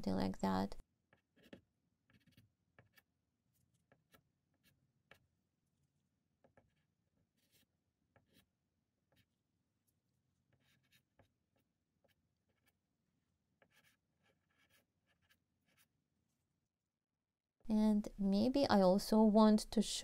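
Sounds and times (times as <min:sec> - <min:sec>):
pastel stick scratching paper: 0:01.1 - 0:16.4.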